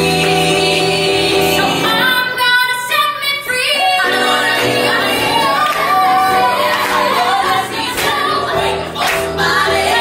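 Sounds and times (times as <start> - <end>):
women singing high notes: 1.8 - 8.8.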